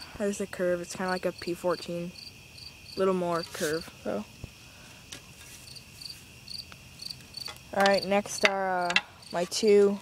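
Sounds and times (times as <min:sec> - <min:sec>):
crickets chirping: 0:00.0 - 0:10.0.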